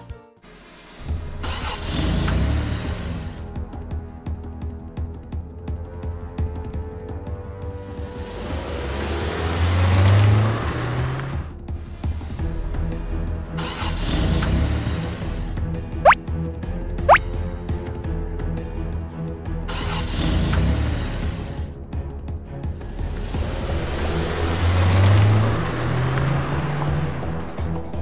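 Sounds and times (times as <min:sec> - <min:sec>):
background music: 0:00.0 - 0:28.0
cartoon truck engine revving: 0:01.4 - 0:03.4, 0:13.6 - 0:15.4.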